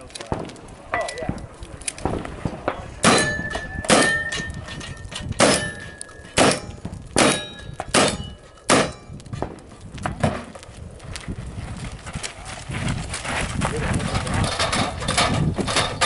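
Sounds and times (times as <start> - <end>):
gunshots: 2.0 - 4.5, 5.4 - 9.6
steel target ringing: 3.0 - 9.2.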